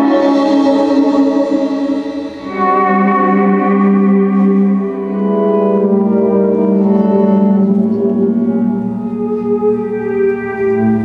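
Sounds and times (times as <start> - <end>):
electric guitar chord with echo: 0.0 - 11.0.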